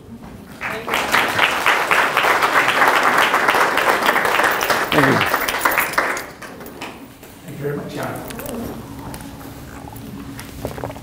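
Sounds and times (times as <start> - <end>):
audience applause: 0.6 - 7.1.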